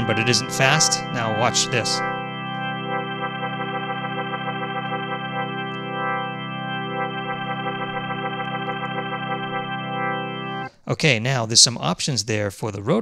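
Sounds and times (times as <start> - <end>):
organ chord through rotary speaker: 0.0 - 10.8.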